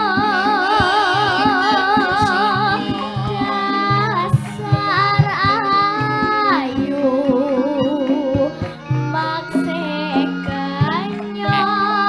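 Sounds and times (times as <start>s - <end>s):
gamelan accompaniment: 0.0s - 12.0s
woman singing into a microphone: 0.0s - 12.0s.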